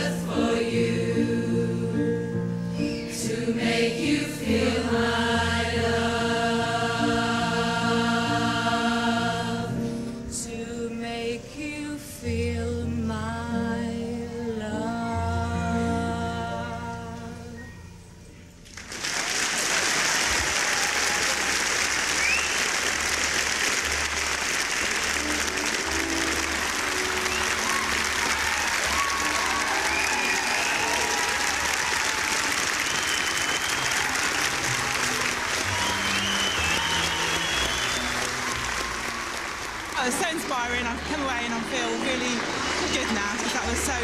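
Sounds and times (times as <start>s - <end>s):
audience clapping and cheering: 18.6s - 44.0s
whoops: 20.4s - 22.7s, 27.0s - 39.8s.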